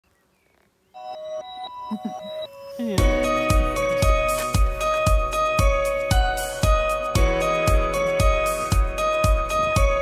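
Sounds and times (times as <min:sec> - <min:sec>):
simple intro melody: 0:01.0 - 0:10.0.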